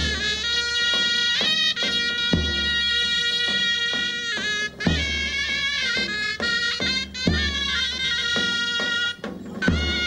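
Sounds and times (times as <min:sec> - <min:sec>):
large drum strokes: 0:00.0 - 0:10.0
shrill shawms playing a folk melody: 0:00.0 - 0:10.0.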